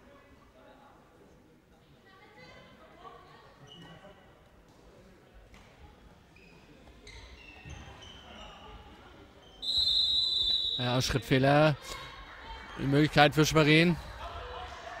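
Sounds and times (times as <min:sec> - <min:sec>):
shoes squeaking on hall floor: 0:03.5 - 0:04.3, 0:05.8 - 0:10.7
referee whistle blast: 0:09.6 - 0:11.0.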